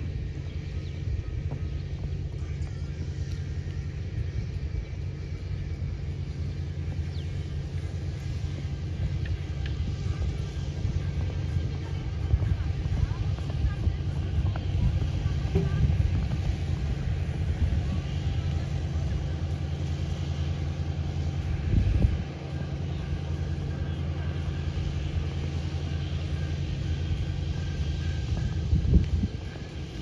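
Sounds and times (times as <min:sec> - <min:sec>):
vehicle engine rumble: 0:00.0 - 0:30.0.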